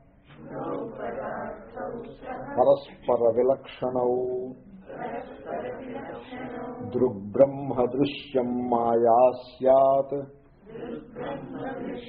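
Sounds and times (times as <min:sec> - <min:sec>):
man chanting melodically: 0:06.8 - 0:10.3.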